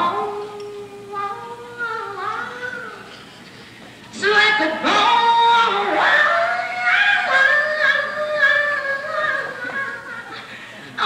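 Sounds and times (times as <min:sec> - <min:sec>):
woman singing long held note: 0:00.0 - 0:03.1, 0:04.2 - 0:10.2.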